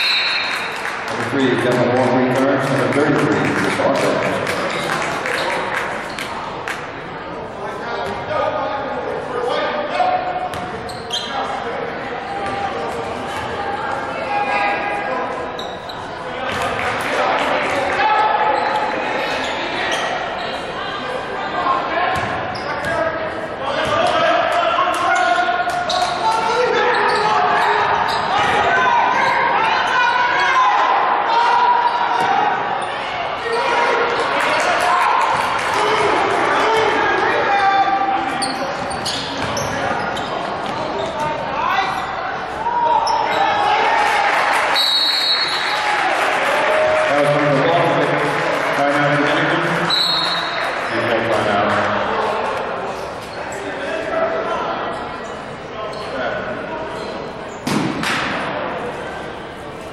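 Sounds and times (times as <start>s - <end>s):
players and spectators voices: 0.0s - 59.9s.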